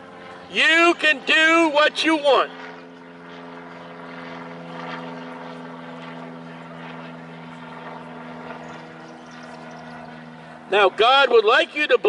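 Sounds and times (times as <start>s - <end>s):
faint street hum: 0.0s - 12.0s
steady engine drone: 0.0s - 12.0s.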